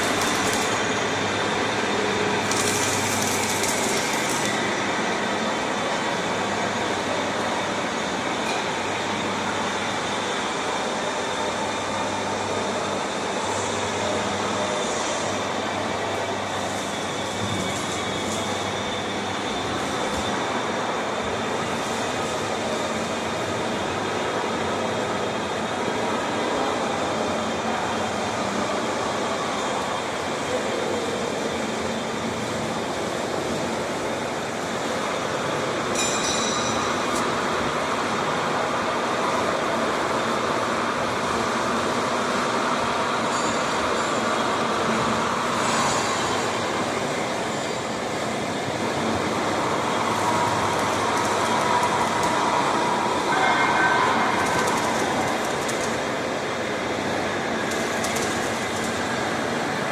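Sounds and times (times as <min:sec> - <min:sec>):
factory machinery running: 0:00.0 - 0:59.9.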